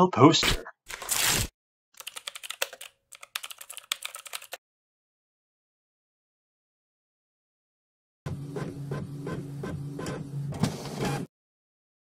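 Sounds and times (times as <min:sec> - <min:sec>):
printer motor hum: 0:08.3 - 0:11.3.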